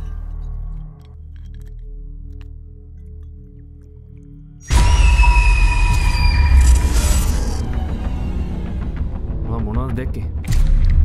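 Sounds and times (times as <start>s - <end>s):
high metallic screeching tones: 4.7s - 9.0s
deep rumbling hit: 4.7s - 11.0s.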